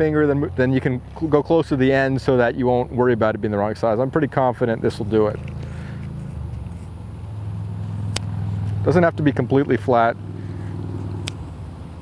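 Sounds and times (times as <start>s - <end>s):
low motor hum: 0.0s - 12.0s
sharp click: 11.2s - 11.4s.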